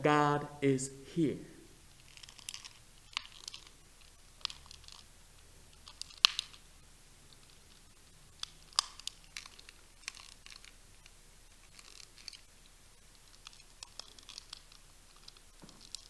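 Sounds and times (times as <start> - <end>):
handling clicks and crinkles: 2.0 - 5.1, 5.7 - 6.6, 7.3 - 16.0.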